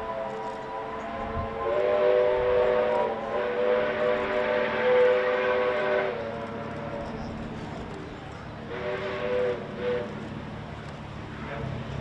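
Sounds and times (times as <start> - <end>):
steam locomotive whistle chord: 0.0 - 6.4.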